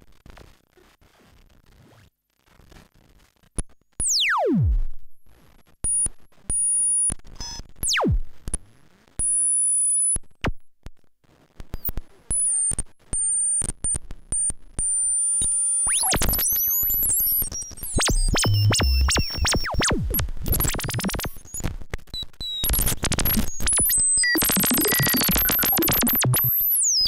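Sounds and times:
glitchy synthesizer tones: 0:07.9 - 0:08.3, 0:15.9 - 0:21.6, 0:22.5 - 0:27.0
clicks: 0:22.6 - 0:26.7.

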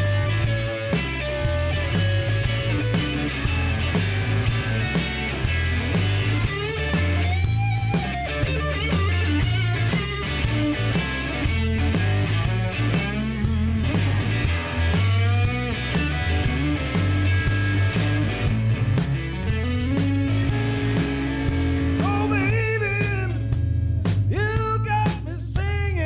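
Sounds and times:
blues-rock band playing: 0:00.0 - 0:26.0
amplified harmonica wailing: 0:21.9 - 0:23.6.

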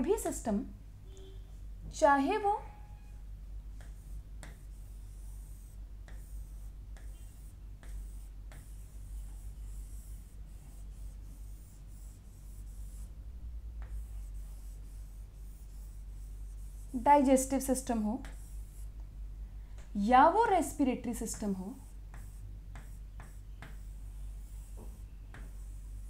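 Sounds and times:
low steady hum: 0:00.0 - 0:26.0
pen scratching on whiteboard screen: 0:02.9 - 0:13.2, 0:13.8 - 0:18.9, 0:20.4 - 0:26.0.

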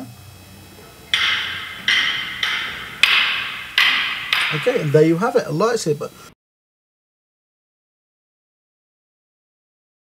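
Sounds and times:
sabers clacking together: 0:01.1 - 0:05.3.

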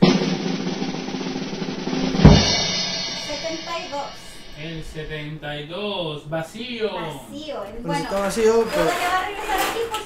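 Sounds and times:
loud final drum hit: 0:00.0 - 0:05.2
drum roll: 0:00.0 - 0:05.7.

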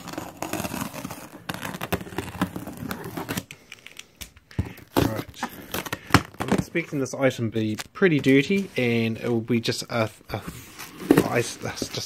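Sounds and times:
tape tearing and crinkling: 0:00.0 - 0:04.0, 0:04.6 - 0:06.9.

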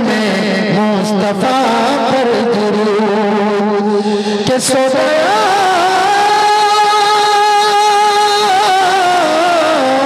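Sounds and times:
man singing through microphone: 0:00.0 - 0:10.0.

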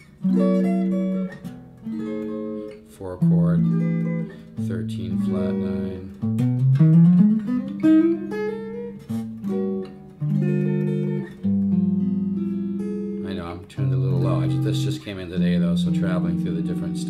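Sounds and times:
jazz guitar chords: 0:00.0 - 0:17.0.

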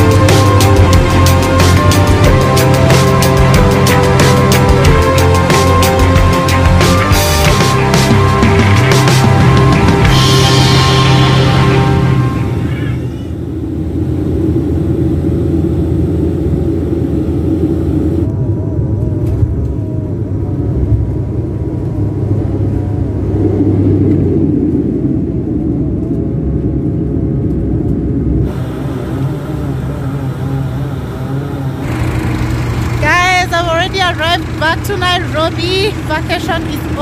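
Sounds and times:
airliner engines rumbling: 0:00.0 - 0:37.0.

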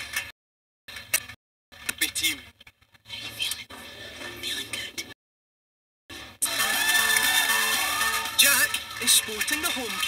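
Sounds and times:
audience cheering: 0:06.4 - 0:10.0.

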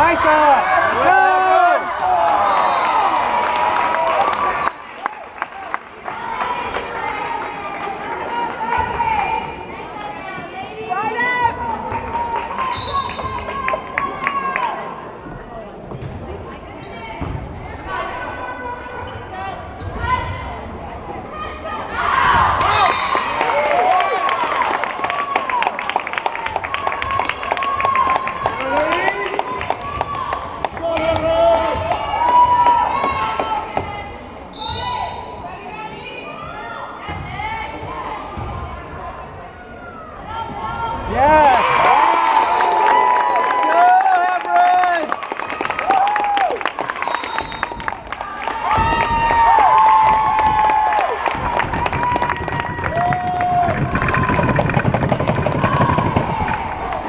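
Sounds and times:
crowd cheering: 0:00.0 - 0:09.6, 0:21.9 - 0:33.7, 0:40.4 - 0:57.0
sneakers squeaking: 0:15.9 - 0:17.4, 0:18.6 - 0:21.8, 0:38.3 - 0:39.6.

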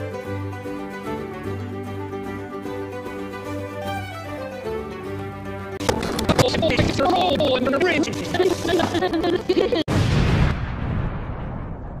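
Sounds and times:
explosion blast: 0:09.9 - 0:12.0.

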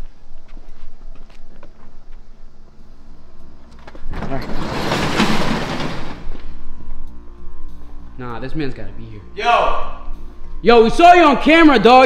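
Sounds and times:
quiet background music: 0:00.0 - 0:12.0
garage door rattling open: 0:03.8 - 0:06.5.

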